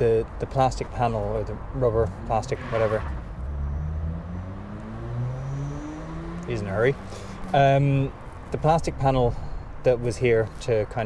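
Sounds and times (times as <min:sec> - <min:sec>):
engine humming: 0:01.3 - 0:10.4.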